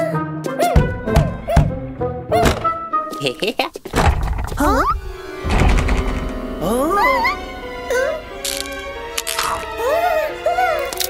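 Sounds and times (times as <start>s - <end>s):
background music: 0.0s - 11.0s
knocking on a door: 0.8s - 2.8s.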